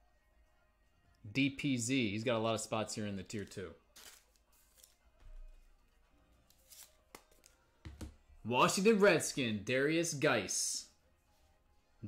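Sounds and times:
trading cards rustling and clicking: 3.2 - 5.0, 6.4 - 7.6.

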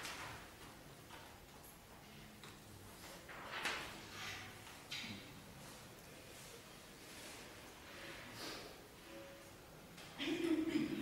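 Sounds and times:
sheet music rustling: 0.0 - 10.2.

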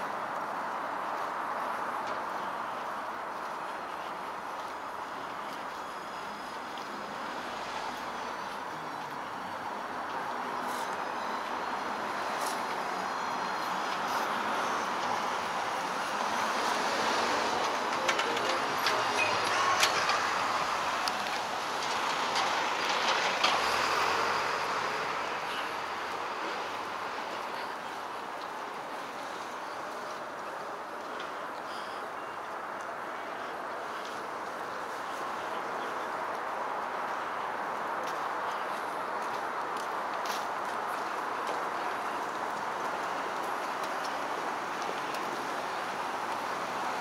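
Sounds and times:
elevated train passing: 12.8 - 27.4.

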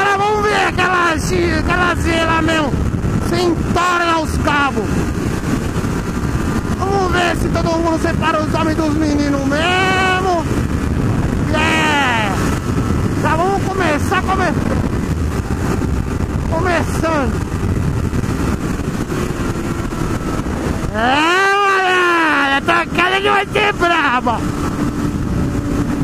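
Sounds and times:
motorcycle engine revving: 0.0 - 26.0
wind rushing on microphone: 0.0 - 26.0.

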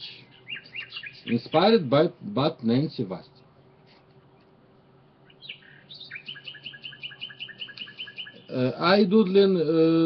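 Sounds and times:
small bird chirping: 0.0 - 1.9, 5.2 - 9.0.

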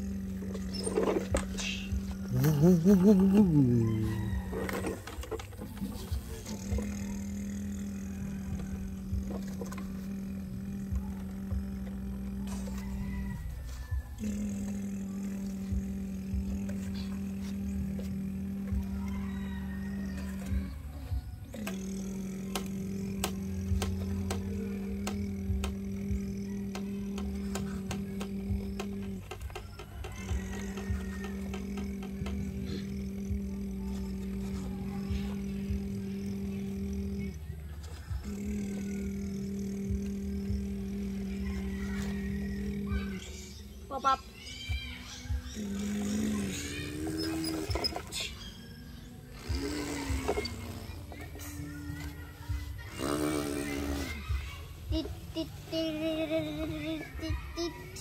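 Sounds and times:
person humming low drone: 0.0 - 58.0
plastic toys clicking in sand: 21.4 - 43.7.

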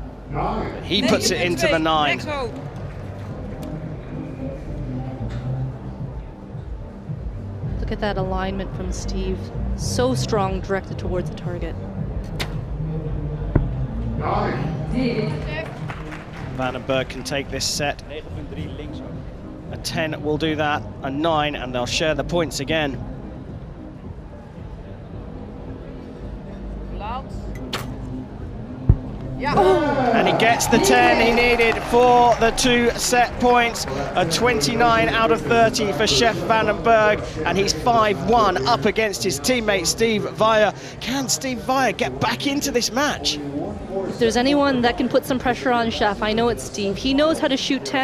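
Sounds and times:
faint background music: 0.0 - 48.0
bow string snap: 12.2 - 12.6, 27.6 - 28.1
arrow thudding into target: 12.3 - 12.7, 27.7 - 28.0.

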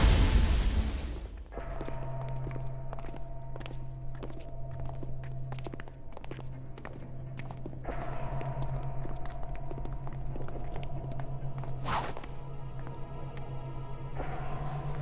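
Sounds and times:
low background music drone: 0.0 - 15.0
footsteps of people walking: 1.5 - 13.7.

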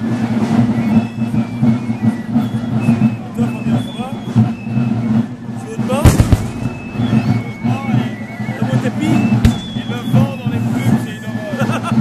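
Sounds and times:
crowd chatter: 0.0 - 12.0
blank gunshots: 6.0 - 7.3.

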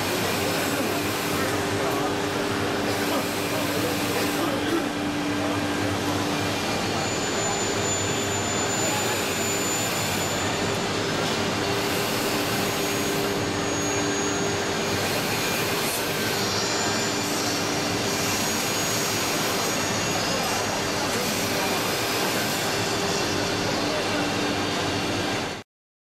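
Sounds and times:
loud machinery noise: 0.0 - 25.6.

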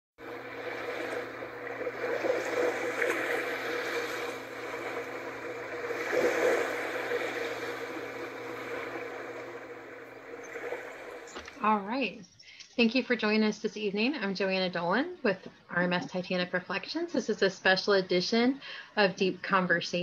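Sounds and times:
low engine hum: 0.2 - 11.6
rushing water: 0.2 - 11.7.

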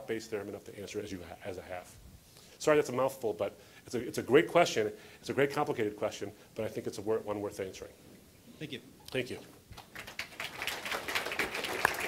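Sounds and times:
audience applauding: 9.7 - 12.0.

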